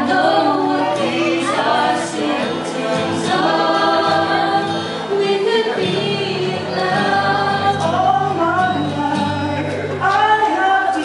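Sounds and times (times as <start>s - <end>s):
man and woman singing duet: 0.0s - 11.0s.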